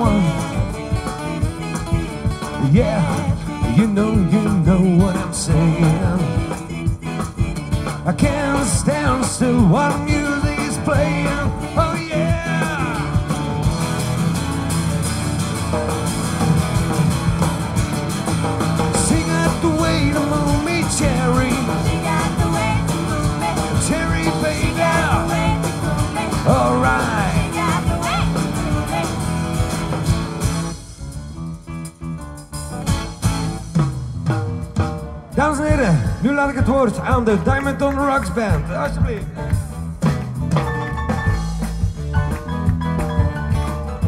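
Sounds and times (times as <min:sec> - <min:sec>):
live rock band playing: 0:00.0 - 0:44.0.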